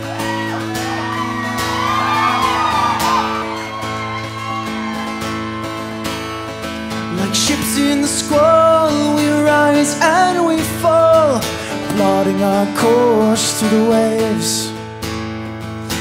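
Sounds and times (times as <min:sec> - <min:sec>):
guitar: 0:00.0 - 0:16.0.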